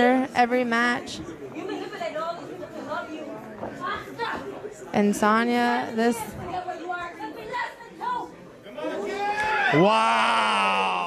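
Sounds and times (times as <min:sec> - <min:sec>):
voices shouting and chattering: 0:00.0 - 0:11.0.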